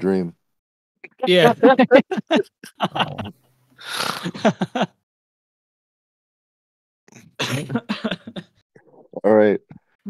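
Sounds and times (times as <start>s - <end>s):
person coughing: 7.4s - 8.5s.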